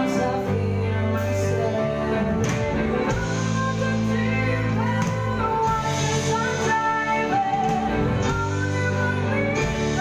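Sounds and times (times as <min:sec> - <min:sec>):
electric guitar: 0:00.0 - 0:10.0
live band music: 0:00.0 - 0:10.0.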